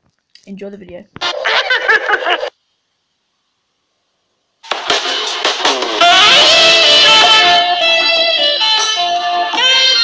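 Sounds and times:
person laughing: 1.3 - 2.5.

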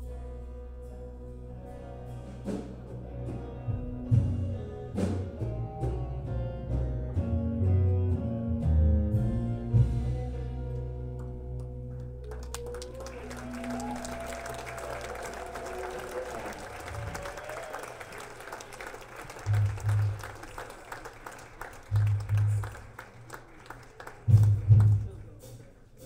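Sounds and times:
live band sustained notes: 0.0 - 26.0
audience applause: 11.2 - 25.9.

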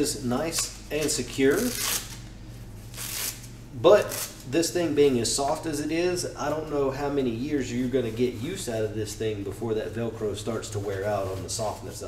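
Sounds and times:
velcro strap and fabric handled: 1.0 - 2.2, 2.9 - 4.4.

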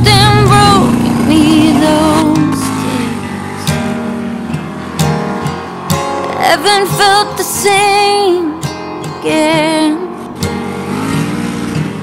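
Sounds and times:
background guitar music: 0.0 - 12.0
drag car engine at full throttle: 0.0 - 12.0.

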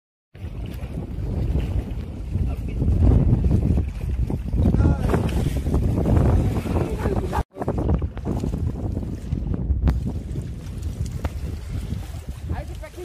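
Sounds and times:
choppy river water: 0.3 - 13.0
wind buffeting microphone: 0.4 - 13.0.

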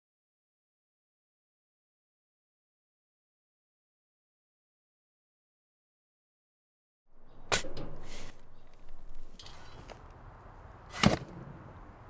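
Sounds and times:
shovel striking dirt: 7.5 - 8.4, 10.9 - 11.4.

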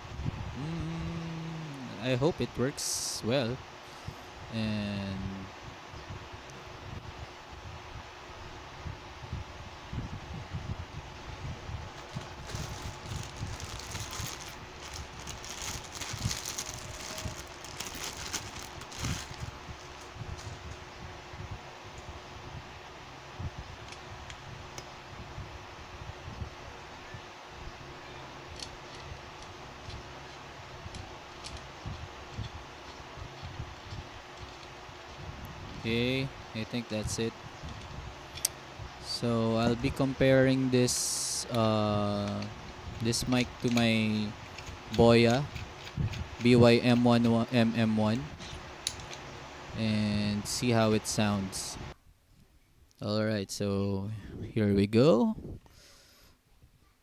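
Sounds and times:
steady background noise: 0.0 - 55.3
microphone handling noise: 10.0 - 21.0
rustling: 11.8 - 20.8.

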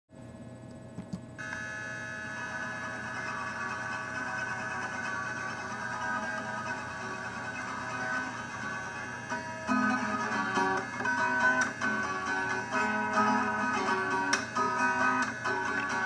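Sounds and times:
electronic hum of sustained tones: 0.2 - 16.0.

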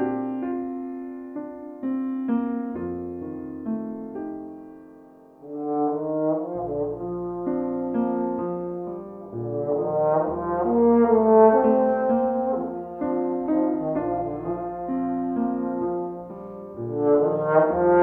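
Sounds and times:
piano accompaniment: 0.0 - 18.0
trombone playing blues melody: 5.4 - 18.0.

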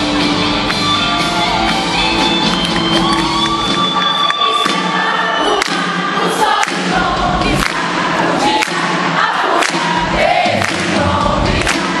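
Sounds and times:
audience singing along and cheering: 0.0 - 12.0.

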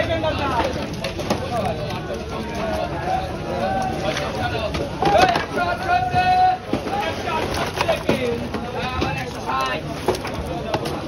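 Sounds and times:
people calling at fish stalls: 0.0 - 11.0.

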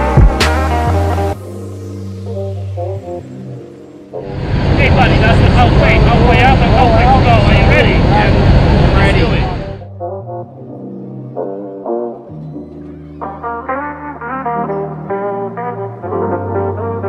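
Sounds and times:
background music with brass: 0.0 - 7.9, 9.0 - 17.0
airplane cabin roar: 4.2 - 9.8.

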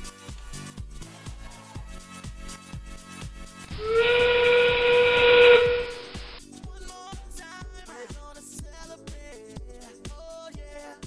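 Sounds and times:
steam train whistle with hiss: 3.7 - 6.4.

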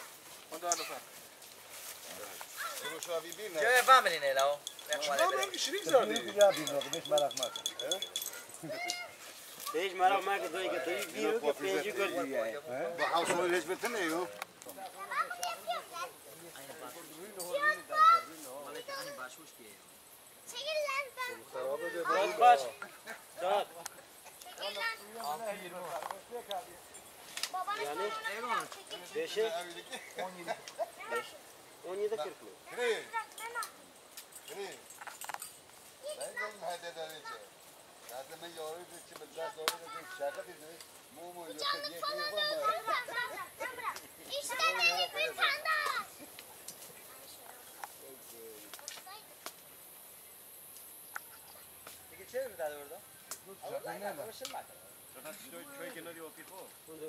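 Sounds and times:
children talking and calling out: 0.0 - 1.2, 2.2 - 19.6, 20.3 - 25.8, 27.2 - 34.9, 35.8 - 37.8, 38.8 - 47.4, 48.7 - 49.4, 51.1 - 51.9
young child's voice: 2.6 - 3.0, 8.6 - 9.2, 15.0 - 16.2, 20.5 - 22.4.

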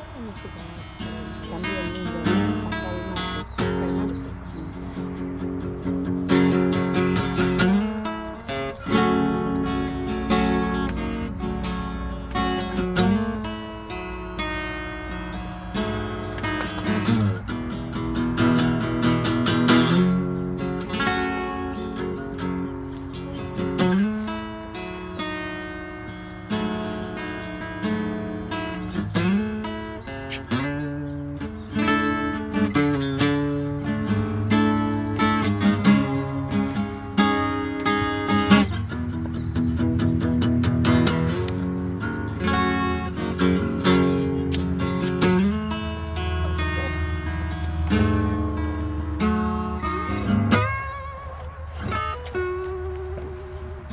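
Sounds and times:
acoustic guitar playing: 0.0 - 53.9.

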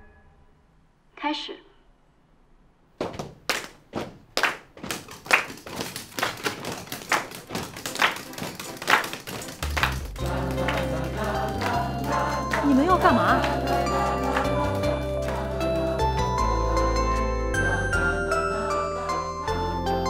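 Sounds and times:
knocks on desks: 3.0 - 10.0
people clapping: 3.0 - 17.2
music with a low beat: 9.5 - 15.2.

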